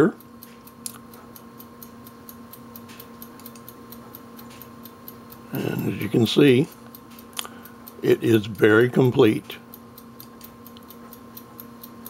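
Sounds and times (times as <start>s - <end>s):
faint even ticking: 0.0s - 12.0s
low electrical hum: 0.0s - 12.0s.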